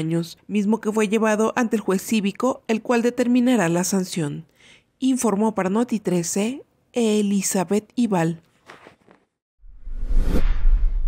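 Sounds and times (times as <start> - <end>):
deep rumble: 9.6 - 11.0
whoosh: 9.6 - 11.0.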